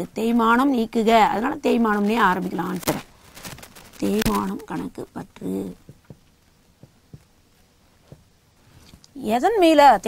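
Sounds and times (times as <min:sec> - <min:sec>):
woman speaking: 0:00.0 - 0:03.1, 0:04.0 - 0:05.8, 0:09.2 - 0:10.0.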